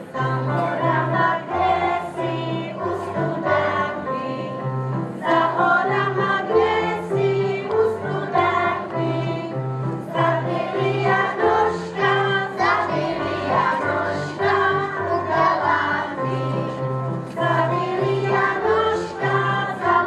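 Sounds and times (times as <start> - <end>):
children singing in unison: 0.0 - 20.0
keyboard accompaniment: 0.0 - 20.0.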